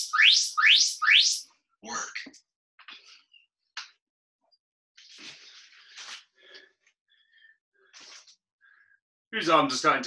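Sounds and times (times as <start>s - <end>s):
rising electronic chirps: 0.0s - 1.4s.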